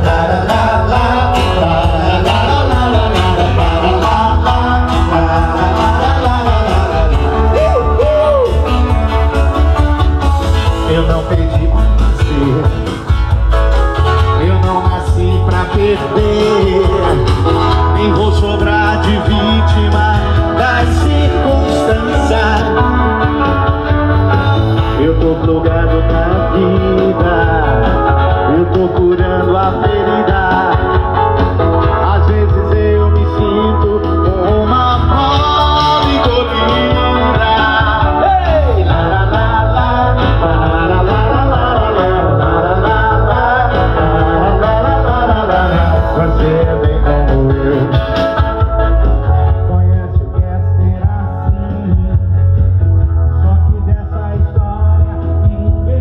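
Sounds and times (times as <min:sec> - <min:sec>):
man singing: 0:00.0 - 0:13.5, 0:14.1 - 0:56.0
electric guitar: 0:00.0 - 0:56.0
heavy bass line: 0:00.0 - 0:56.0.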